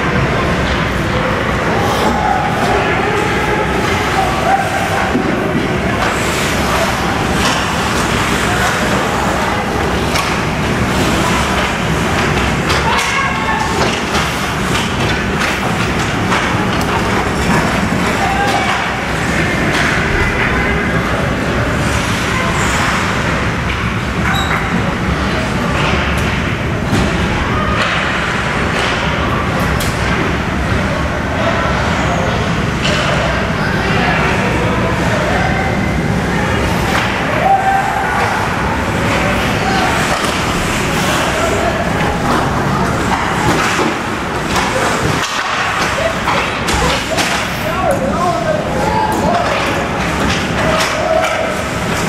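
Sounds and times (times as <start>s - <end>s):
indistinct voices of people: 0.0s - 52.0s
hockey knocks and thuds: 41.9s - 47.6s.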